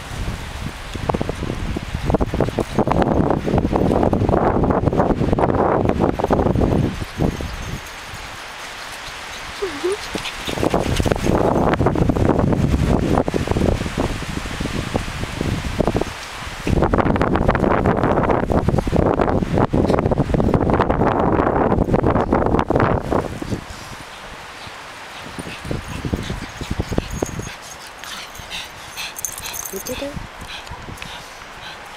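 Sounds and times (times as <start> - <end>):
small dogs playing and running: 6.0 - 12.8, 23.0 - 31.9.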